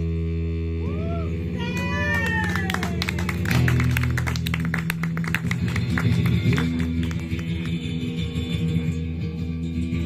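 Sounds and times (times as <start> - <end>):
acoustic guitar playing: 3.0 - 10.0.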